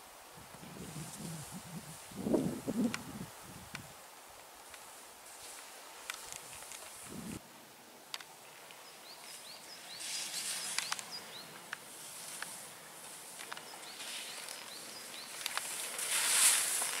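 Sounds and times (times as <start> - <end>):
skis scraping over snow: 4.6 - 7.4, 9.3 - 17.0
sharp clicks: 10.7 - 11.8.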